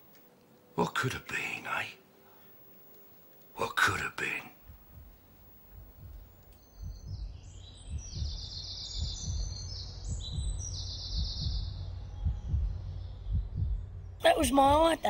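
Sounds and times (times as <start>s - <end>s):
steady low hum: 0.0s - 15.0s
low uneven thudding: 4.6s - 14.0s.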